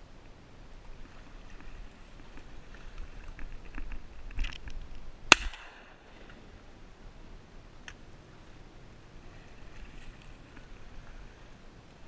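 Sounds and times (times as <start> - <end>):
shotgun shot: 5.3 - 6.0.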